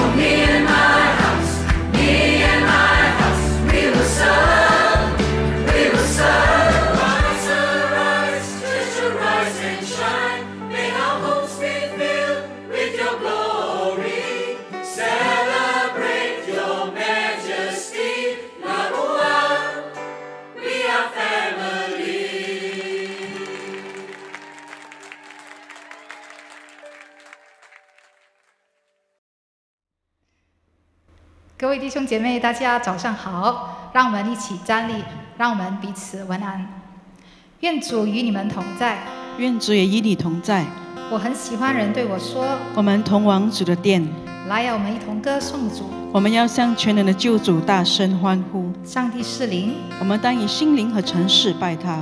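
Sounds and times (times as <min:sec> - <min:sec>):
drums: 0:00.0 - 0:07.7
bass: 0:00.0 - 0:09.4, 0:41.1 - 0:52.0
group singing worship song: 0:00.0 - 0:24.3.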